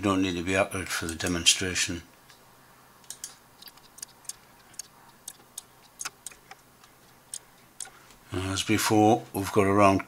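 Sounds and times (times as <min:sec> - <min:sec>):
computer mouse clicking: 0:03.0 - 0:08.2.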